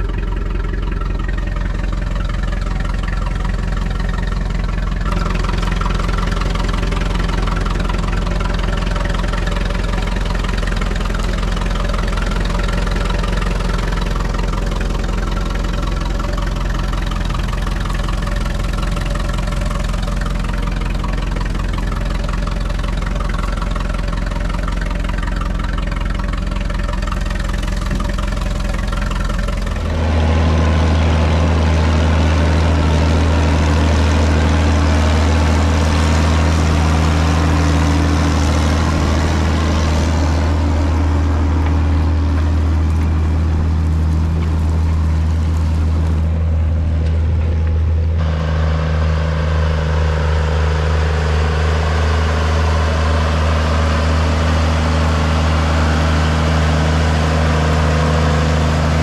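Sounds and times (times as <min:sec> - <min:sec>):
deeper louder tractor engine: 0:00.0 - 0:59.0
tractor engine running: 0:00.0 - 0:59.0.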